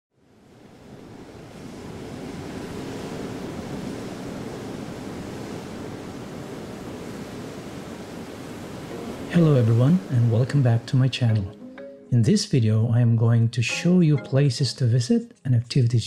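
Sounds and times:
ocean waves washing: 0.2 - 12.3.

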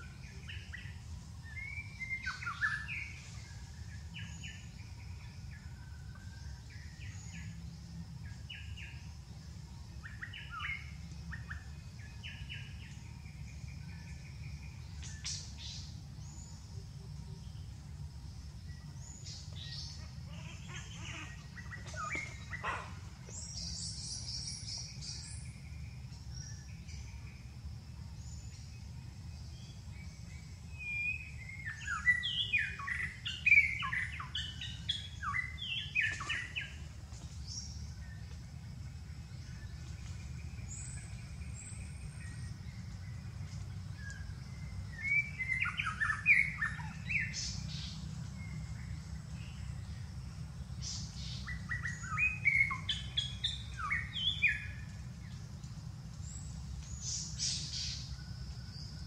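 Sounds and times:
steady low rumble: 0.0 - 59.0
birds chirping and calling: 18.8 - 27.1, 30.0 - 38.2, 39.2 - 58.1.

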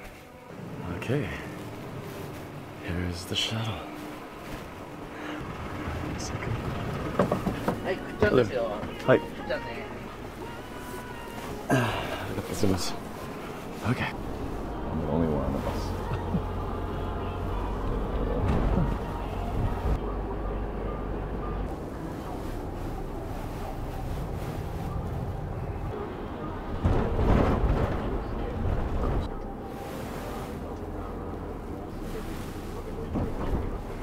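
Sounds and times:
vehicle engine and tyre rumble: 0.0 - 34.0.

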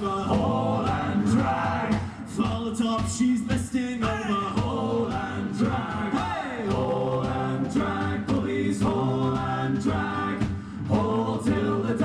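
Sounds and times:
men singing in harmony: 0.0 - 12.0.

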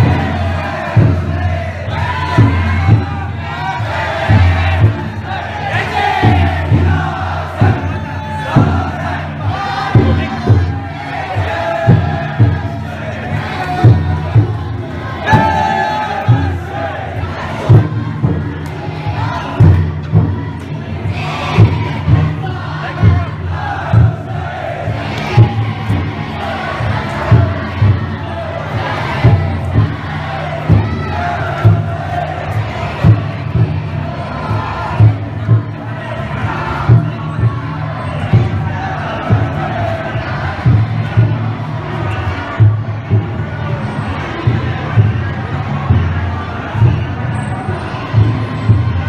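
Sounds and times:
big taiko drum beats: 0.0 - 49.0
crowd chanting and shouting: 0.0 - 49.0.

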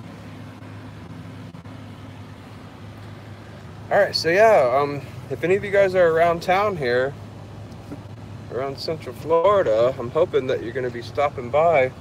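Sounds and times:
car cabin engine and road noise: 0.0 - 12.0.

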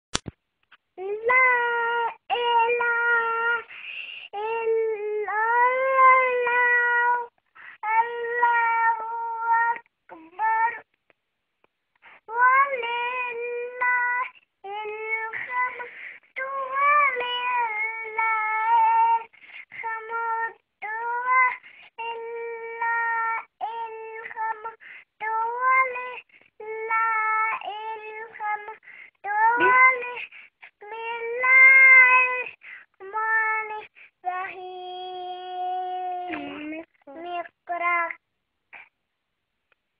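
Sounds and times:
child chanting recitation: 1.0 - 10.9, 12.2 - 38.2.

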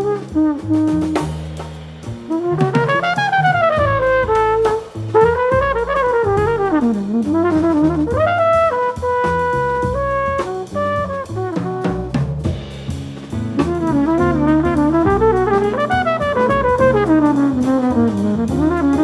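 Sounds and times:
drum kit: 0.0 - 19.0
jazz trumpet soloing: 0.0 - 19.0
upright bass: 0.0 - 19.0.

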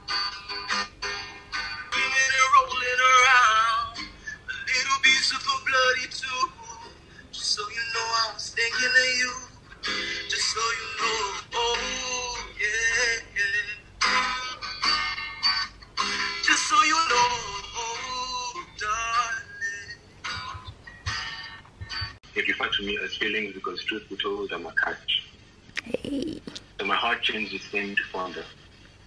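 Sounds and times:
man singing through phone speaker: 2.0 - 9.5, 10.3 - 13.9, 16.5 - 20.5.

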